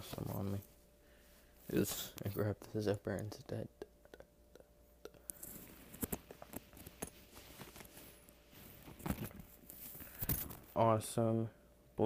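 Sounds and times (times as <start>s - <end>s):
fabric rustling: 5.4s - 10.8s.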